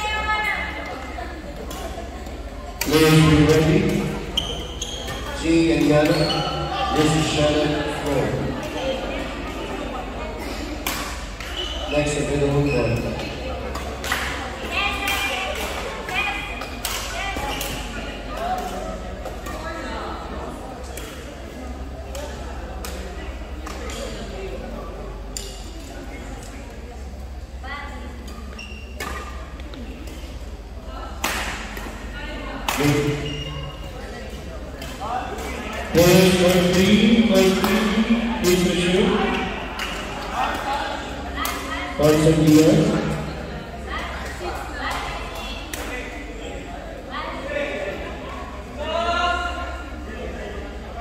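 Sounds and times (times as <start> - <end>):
people talking and calling out: 0.0 - 51.0
steady hall hum: 0.0 - 51.0.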